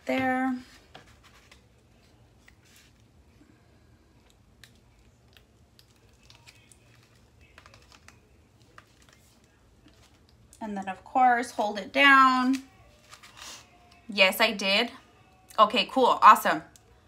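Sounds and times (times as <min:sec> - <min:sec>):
faint clicks and rustles of paper: 0:00.5 - 0:10.6, 0:12.4 - 0:14.1.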